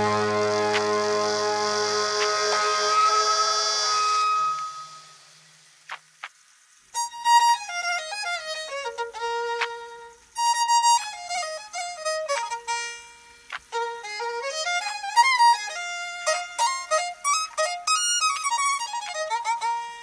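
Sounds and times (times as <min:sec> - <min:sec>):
fast violin melody: 0:00.0 - 0:04.8, 0:13.6 - 0:20.0.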